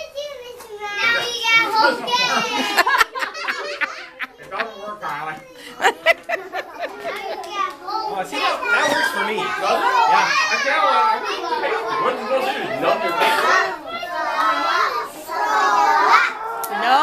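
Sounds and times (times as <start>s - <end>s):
children talking and calling out: 0.0s - 17.0s.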